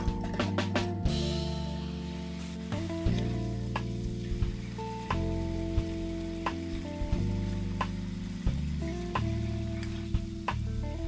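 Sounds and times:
music of held chords: 0:00.0 - 0:11.0
sauce sizzling in frying pan: 0:00.0 - 0:11.0.

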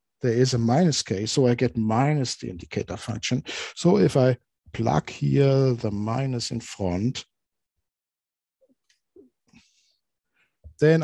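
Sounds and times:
speech: 0:00.2 - 0:07.2, 0:10.7 - 0:11.0.

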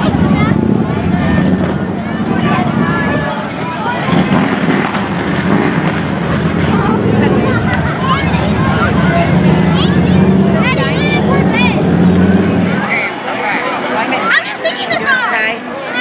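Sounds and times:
car engine running slowly: 0:00.0 - 0:13.0
crowd chattering and calling: 0:00.0 - 0:16.0.

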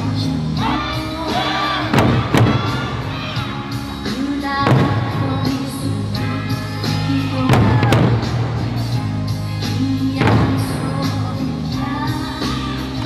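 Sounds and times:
barrel drums striking in unison: 0:01.8 - 0:03.1, 0:04.6 - 0:05.5, 0:07.5 - 0:08.7, 0:10.2 - 0:11.0.

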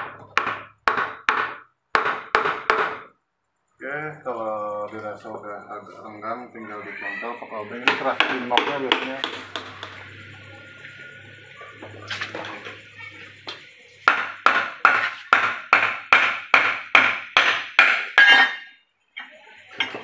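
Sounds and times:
faint low hum: 0:03.5 - 0:14.1
hammer tapping on metal: 0:07.8 - 0:10.2.

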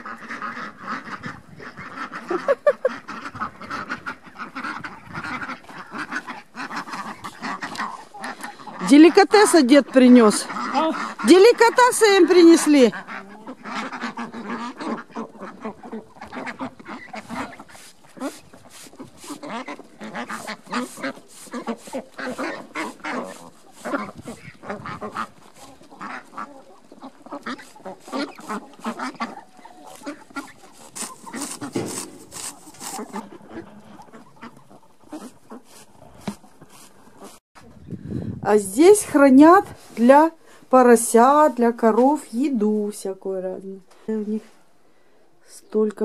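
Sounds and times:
ducks quacking: 0:00.0 - 0:37.4.

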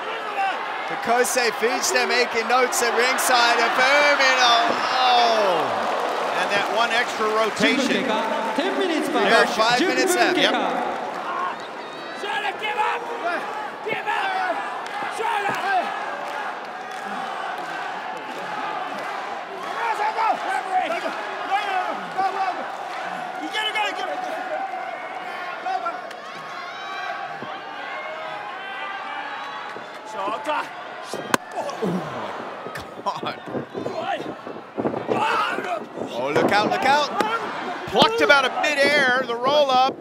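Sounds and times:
crowd shouting: 0:00.0 - 0:39.8.

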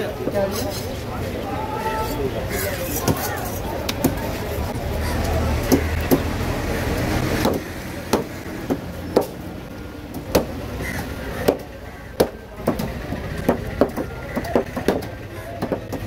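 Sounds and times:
low motor rumble: 0:03.6 - 0:16.0
knife chopping fish on wooden block: 0:12.2 - 0:16.0.

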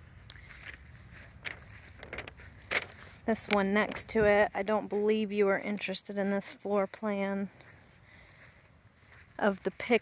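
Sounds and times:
soft footsteps on dry lawn: 0:00.0 - 0:10.0.

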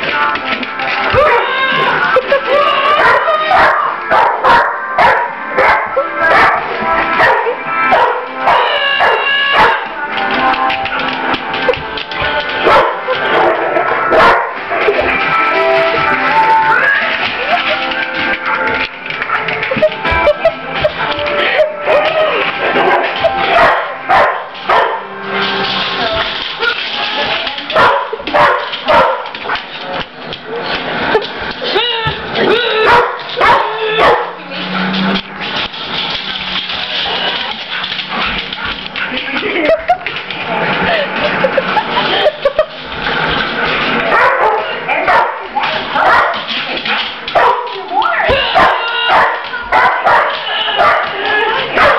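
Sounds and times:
music playing: 0:00.0 - 0:51.9
dog barking: 0:03.0 - 0:06.6, 0:07.2 - 0:09.8, 0:12.7 - 0:14.6, 0:22.8 - 0:25.1, 0:27.8 - 0:29.3, 0:32.8 - 0:34.4, 0:44.1 - 0:45.4, 0:46.0 - 0:46.5, 0:47.4 - 0:47.7, 0:48.4 - 0:51.2.

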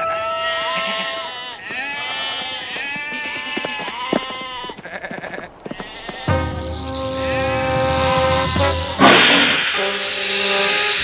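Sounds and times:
sheep bleating: 0:00.0 - 0:09.0.

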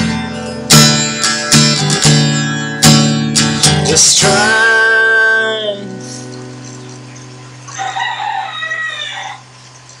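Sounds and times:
acoustic guitar chord ringing: 0:00.0 - 0:07.6
rooster crowing: 0:07.7 - 0:09.6.

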